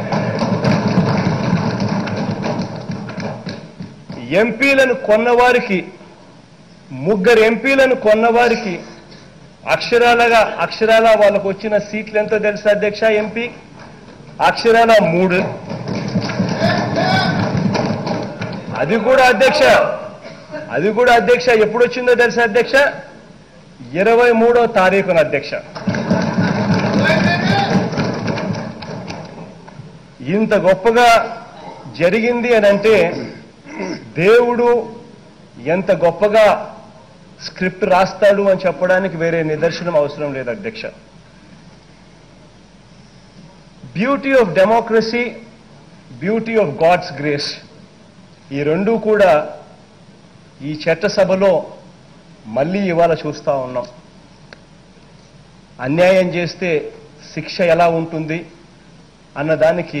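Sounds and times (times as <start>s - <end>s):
people clapping: 0.0s - 4.1s, 15.4s - 19.1s, 25.7s - 29.8s
thumping on wooden desks: 0.0s - 4.3s, 15.4s - 19.1s, 25.7s - 29.8s.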